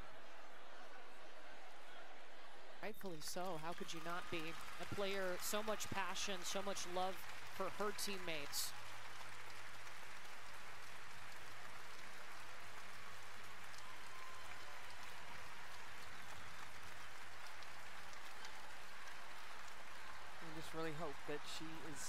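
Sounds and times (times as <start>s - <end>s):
crowd applauding: 0.0s - 22.0s.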